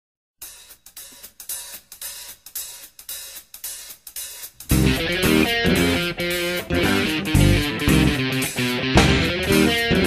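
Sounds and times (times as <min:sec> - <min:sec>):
cymbal struck in steady rhythm: 0:00.4 - 0:10.0.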